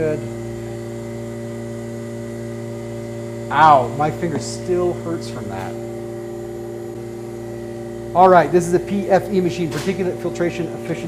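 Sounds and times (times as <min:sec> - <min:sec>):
machine hum: 0:00.0 - 0:11.0.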